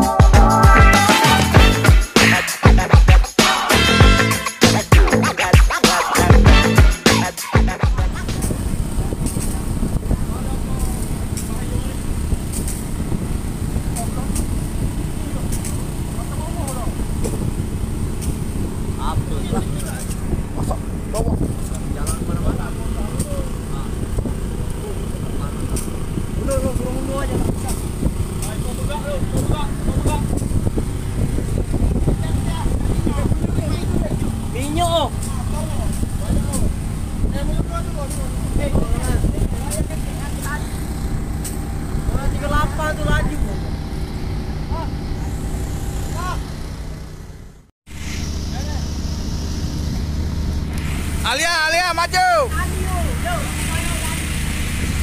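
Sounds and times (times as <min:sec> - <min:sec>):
voices calling: 0:00.0 - 0:46.8, 0:51.1 - 0:54.5
boat engine rumble: 0:07.9 - 0:55.0.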